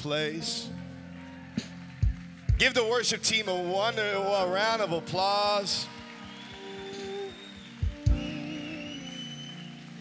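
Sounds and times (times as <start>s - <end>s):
soft worship band music: 0.0s - 10.0s.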